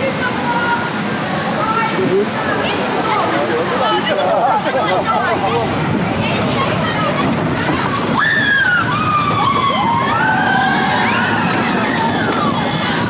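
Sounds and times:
roller coaster rumbling on track: 0.0s - 13.0s
riders screaming: 8.0s - 13.0s.

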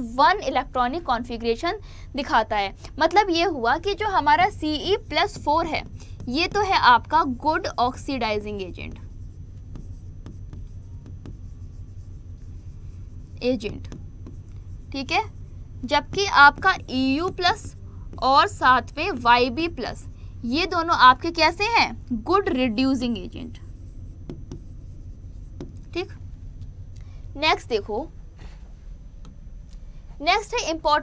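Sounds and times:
steady low hum: 0.0s - 31.0s
stylus tapping and scratching: 3.0s - 26.7s.

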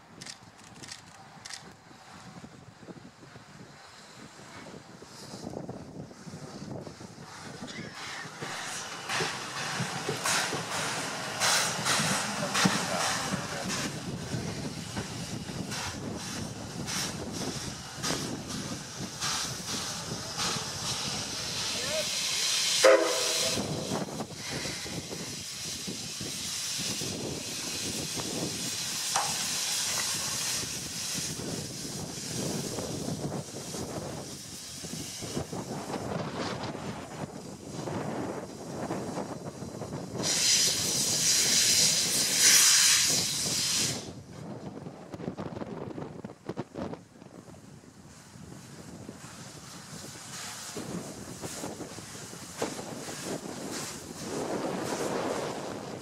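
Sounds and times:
steam locomotive running past: 1.0s - 56.0s
steam hissing: 3.3s - 44.6s, 48.0s - 56.0s
train whistle: 22.8s - 23.7s.

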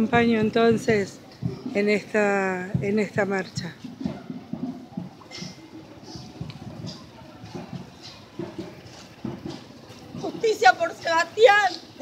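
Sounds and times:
faint indistinct murmurs: 0.0s - 12.0s
footsteps and shuffling: 0.0s - 12.0s.

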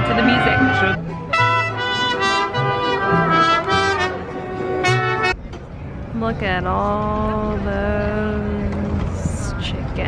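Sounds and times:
live brass band music: 0.0s - 5.4s.

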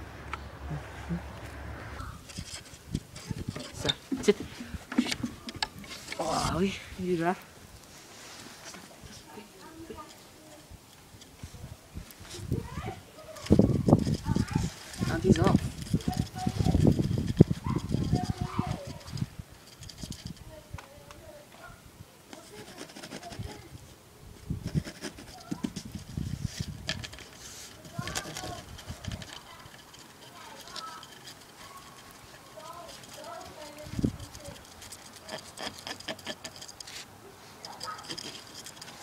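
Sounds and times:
plastic pipe knocking and rustling: 2.3s - 6.2s
taps and scratches on plastic pipe: 2.3s - 6.2s, 13.4s - 21.2s, 22.3s - 23.7s, 24.6s - 39.0s.

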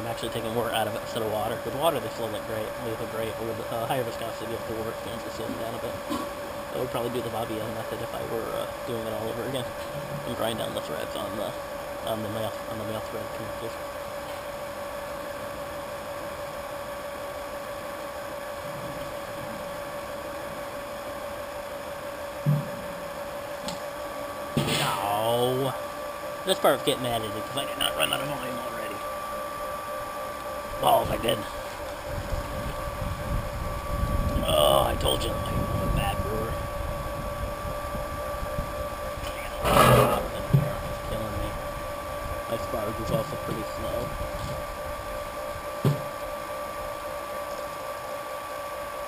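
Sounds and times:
electric pump humming: 0.0s - 49.0s
person's voice: 26.5s - 29.0s, 30.8s - 31.5s, 34.4s - 36.6s.

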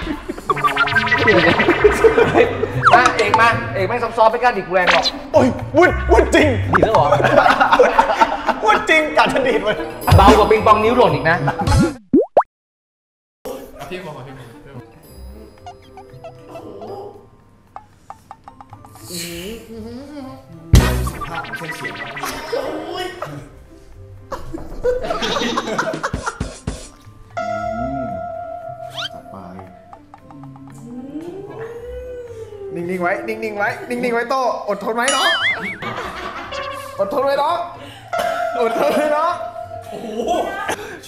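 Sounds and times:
men talking and laughing: 0.0s - 3.8s, 5.8s - 11.8s, 13.7s - 17.4s, 21.7s - 27.0s, 35.1s - 41.0s
upward sliding sound-effect tones: 0.5s - 3.4s, 21.0s - 22.6s.

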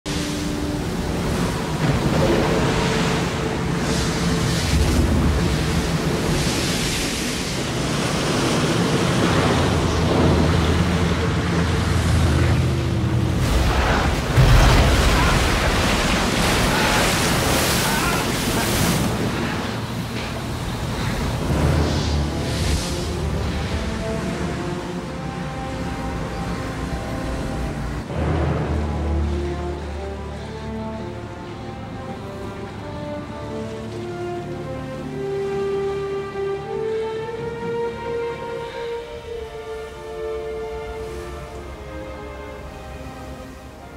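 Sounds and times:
wind: 0.0s - 43.9s
heavy waves crashing on boat: 0.1s - 43.9s
orchestral score sustained notes: 0.1s - 43.9s.

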